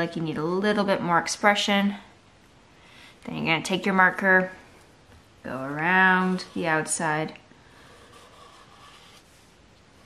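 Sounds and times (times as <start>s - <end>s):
marker scratching on paper: 7.8s - 10.0s.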